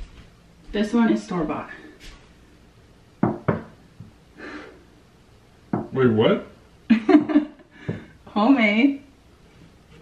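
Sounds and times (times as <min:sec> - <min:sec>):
knocks on hard surface: 0:03.2 - 0:03.8, 0:05.7 - 0:06.0, 0:07.8 - 0:08.1
soft breath: 0:04.4 - 0:05.0.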